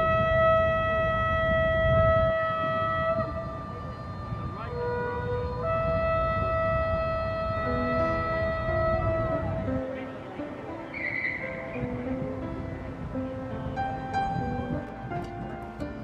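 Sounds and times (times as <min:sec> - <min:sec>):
slow flute-like melody: 0:00.0 - 0:12.4.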